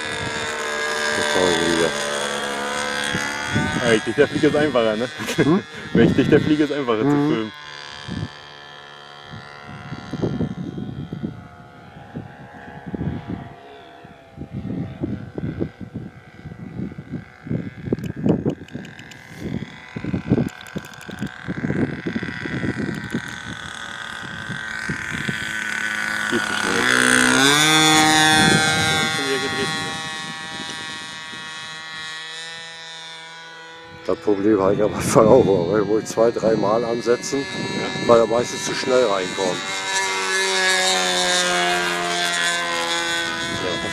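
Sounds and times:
model plane engine droning: 0.0 - 43.9.

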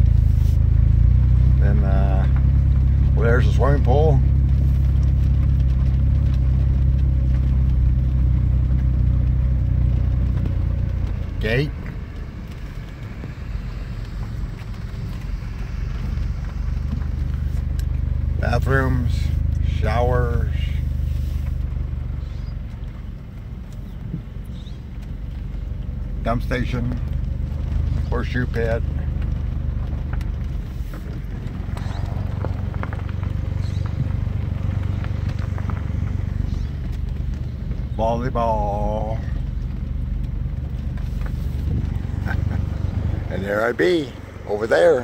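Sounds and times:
low hum: 0.0 - 45.0
vehicle engine and road rumble: 0.0 - 45.0.

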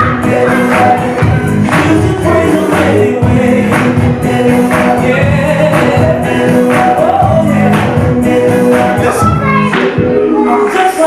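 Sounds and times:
gospel choir singing over a beat: 0.0 - 11.0.

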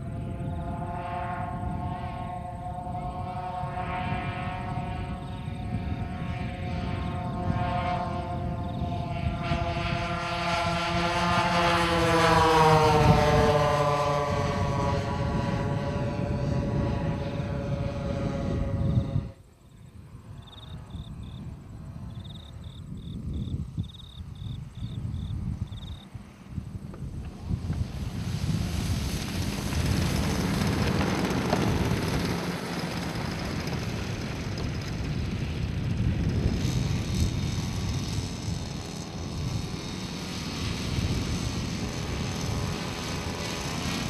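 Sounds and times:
model airplane engines droning: 0.0 - 44.0
wind noise: 0.0 - 44.0.

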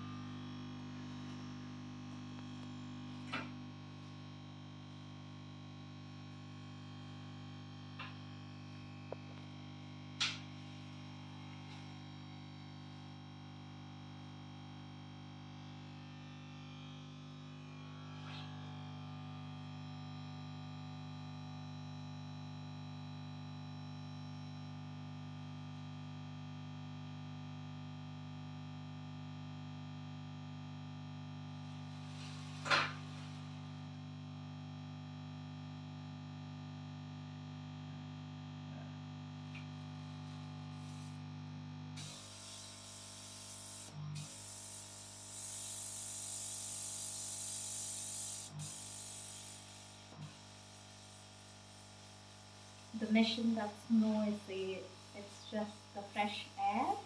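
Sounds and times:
steady electrical hum: 0.0 - 20.0, 31.3 - 57.0
compressed air hissing: 42.0 - 51.8.

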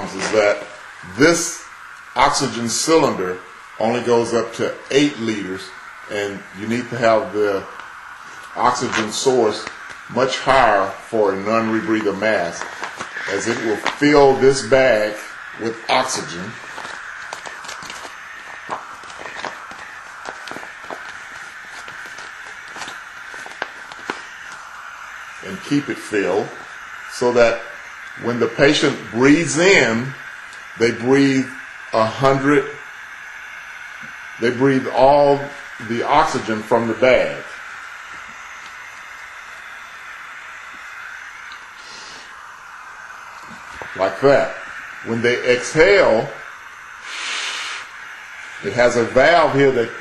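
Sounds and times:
oxygen hissing into bag: 0.0 - 50.0
breath through mask: 12.6 - 14.0, 37.5 - 44.0, 46.4 - 48.7.

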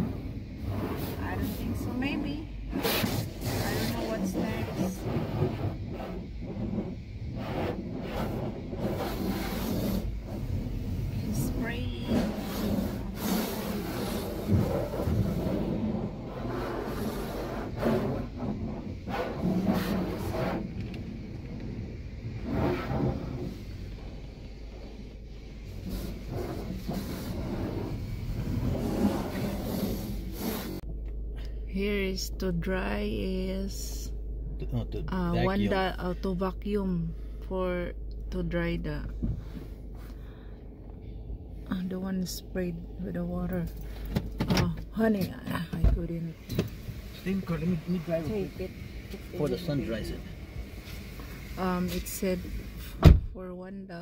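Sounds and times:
pressure washer spraying car: 0.0 - 30.8, 45.0 - 53.0.

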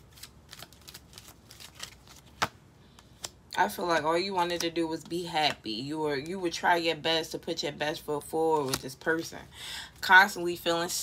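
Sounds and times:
cards being shuffled: 0.0 - 3.4, 8.6 - 9.0.

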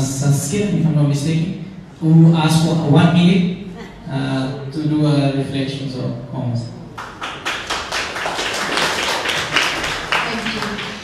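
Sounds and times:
audience clapping: 6.9 - 11.0.

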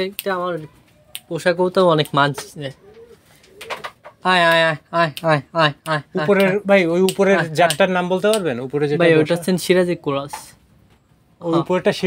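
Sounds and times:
man calling to pigeons: 0.0 - 3.1, 4.2 - 10.6
faint pigeon coos: 2.2 - 4.3.

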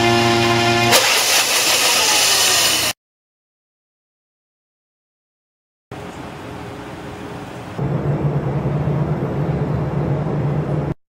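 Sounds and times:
equipment and ventilation noise: 5.9 - 11.0
heavy low drone: 7.8 - 11.0.

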